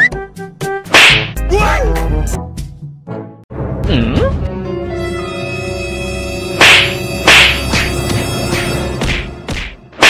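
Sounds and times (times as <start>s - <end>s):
jaunty background music: 0.0s - 10.0s
whip-crack snap: 0.9s - 1.4s, 6.6s - 8.0s.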